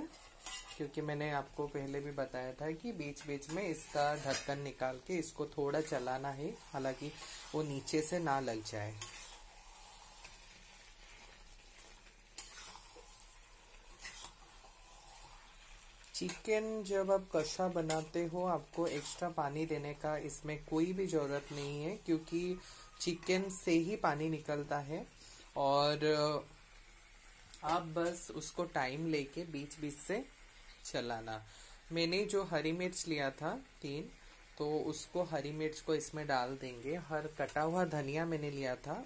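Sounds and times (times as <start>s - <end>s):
spatula stirring: 0.0s - 24.8s
curry sizzling in a pan: 0.0s - 39.0s
person speaking: 0.8s - 9.0s, 16.1s - 26.4s.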